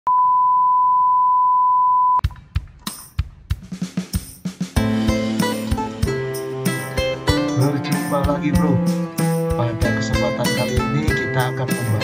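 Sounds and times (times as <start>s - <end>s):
steady test tone beep: 0.1s - 2.2s.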